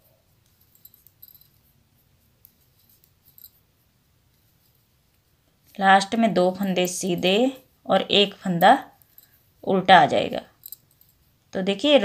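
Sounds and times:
knitting needles clicking: 6.4 - 7.4.

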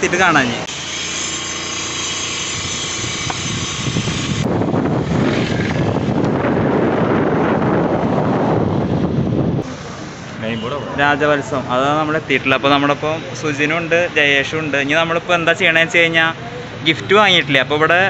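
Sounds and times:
motor scooter engine: 0.4 - 6.6
wind buffeting microphone: 2.5 - 9.8.

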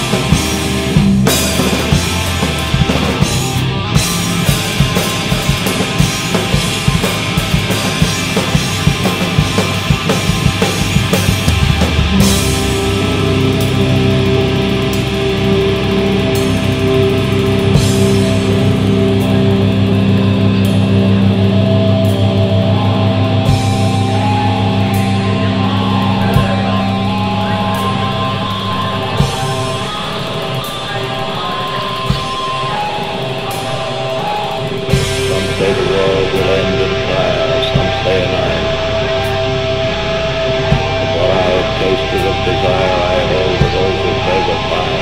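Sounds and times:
distorted electric guitars: 0.0 - 45.0
heavy metal song: 0.0 - 45.0.

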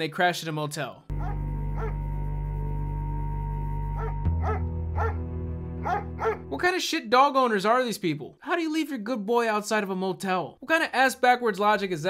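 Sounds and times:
low drone soundtrack: 1.1 - 6.6.

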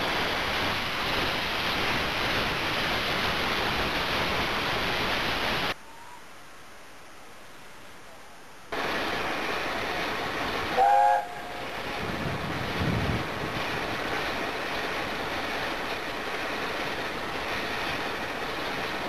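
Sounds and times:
steady rushing noise: 0.0 - 5.8, 8.7 - 19.0
steam locomotive whistle blast: 10.7 - 11.7.

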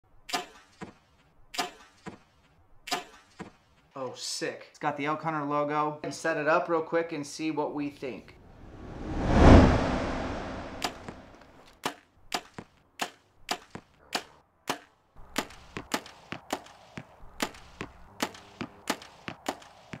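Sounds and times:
whoosh: 8.5 - 11.4.

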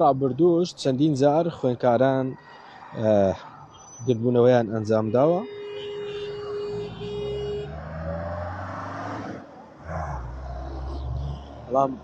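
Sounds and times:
truck engine: 5.9 - 12.0
car driving past slowly: 7.6 - 12.0.

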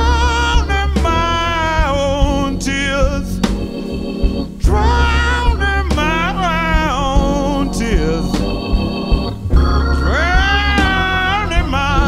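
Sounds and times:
bending melody line: 0.0 - 12.0
drums: 0.0 - 12.0
organ sustained chord: 0.0 - 12.0.

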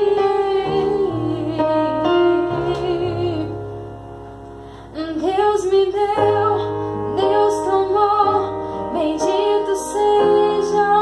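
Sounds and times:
woman singing a slow ballad: 0.0 - 3.7, 4.9 - 11.0
digital piano chords: 0.0 - 11.0.

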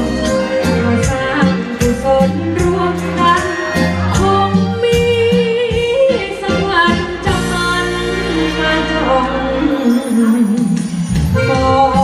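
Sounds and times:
backing music: 0.0 - 12.0
person singing: 0.0 - 12.0.

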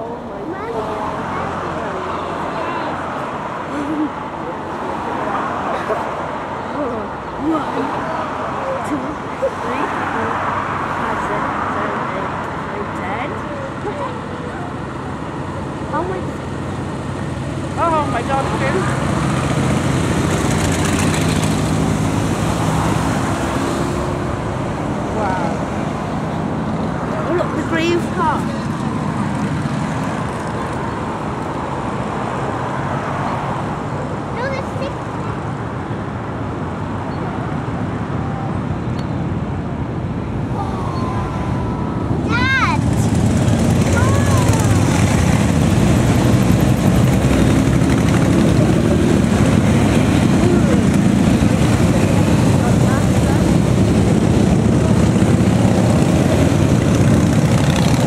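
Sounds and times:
engine drone: 0.0 - 58.0
traffic passing: 0.0 - 58.0.

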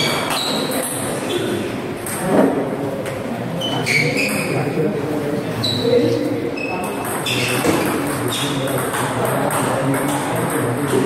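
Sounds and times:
background voices in echoing hall: 0.0 - 11.0
table tennis ball pinging: 6.7 - 11.0.

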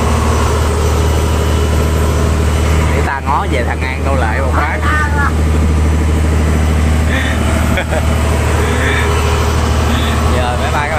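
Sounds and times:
boat engine droning: 0.0 - 10.9.

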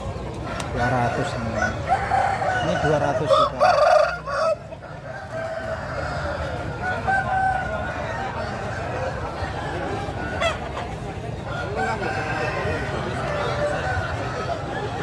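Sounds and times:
crowd hubbub: 0.0 - 15.0
roosters crowing: 0.0 - 15.0.

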